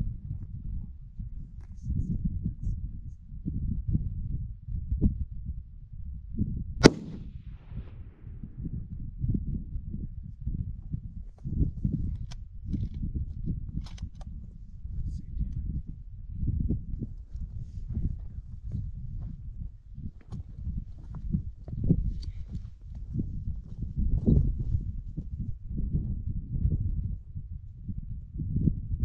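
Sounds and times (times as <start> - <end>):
wind buffeting microphone: 0.0 - 29.0
rifle shot with echo: 6.8 - 8.4.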